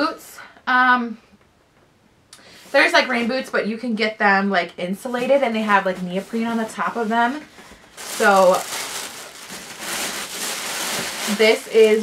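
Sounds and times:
wrapping rustling and crinkling: 5.0 - 12.0.

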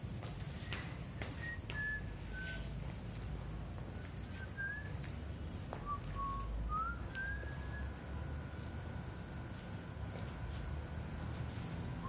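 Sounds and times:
person whistling a slow tune: 0.6 - 2.9, 4.2 - 5.2, 5.8 - 8.0.

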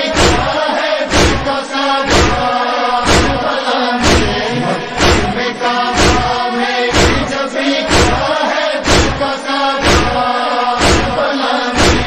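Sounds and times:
chest striking thuds: 0.0 - 10.2, 10.8 - 11.2, 11.8 - 12.0
chorus chanting long notes: 0.0 - 12.0.

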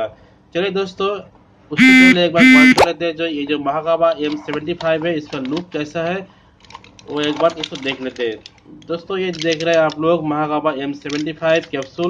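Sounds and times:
man speaking: 1.8 - 2.9.

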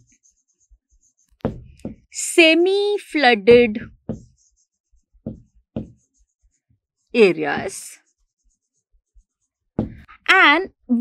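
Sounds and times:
marker squeaking on whiteboard: 0.0 - 2.1, 3.5 - 6.6
short low thuds: 1.4 - 2.2, 3.5 - 4.3, 5.3 - 6.0, 9.8 - 10.1.

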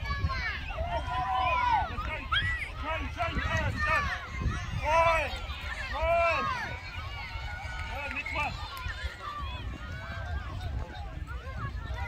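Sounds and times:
people shouting and calling: 0.0 - 12.0
wind rumble on microphone: 0.0 - 12.0.

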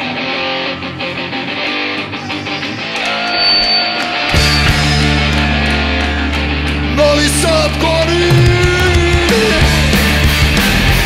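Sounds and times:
electric guitar riff: 0.0 - 11.0.

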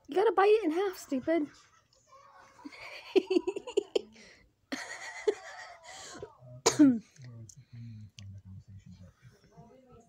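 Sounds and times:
person clearing throat: 6.6 - 7.1.

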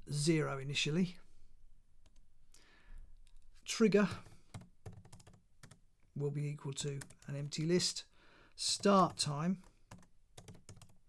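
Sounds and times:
computer keyboard keystrokes: 4.1 - 5.8, 9.9 - 11.0.

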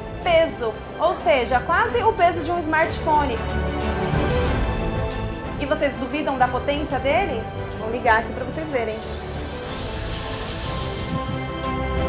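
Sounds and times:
background music: 0.0 - 12.0
hair dryer motor whine: 8.9 - 11.6.

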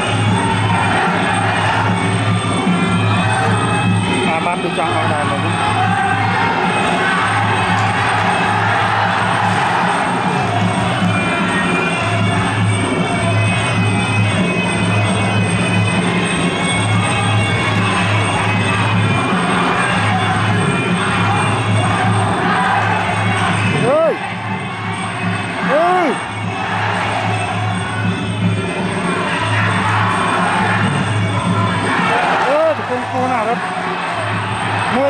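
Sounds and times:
crowd voices and shouts: 0.0 - 35.0.

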